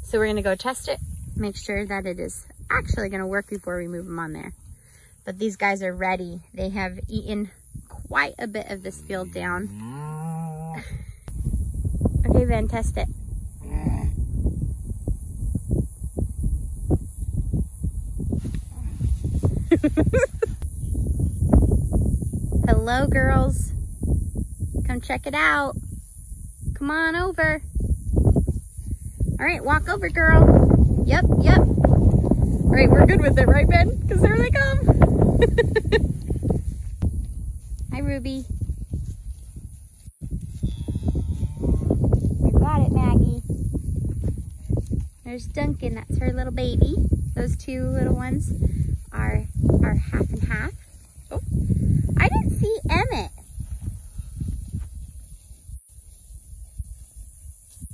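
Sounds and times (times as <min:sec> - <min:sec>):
wind buffeting microphone: 0:00.0 - 0:57.9
person laughing: 0:19.6 - 0:20.6, 0:35.2 - 0:36.2
footsteps swishing through grass: 0:36.3 - 0:40.8.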